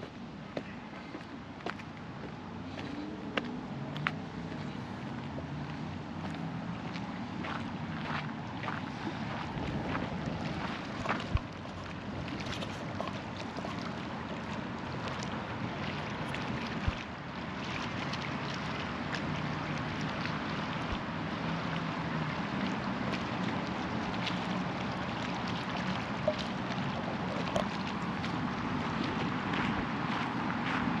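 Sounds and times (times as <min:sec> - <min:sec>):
wind on microphone: 0:08.4 - 0:13.1.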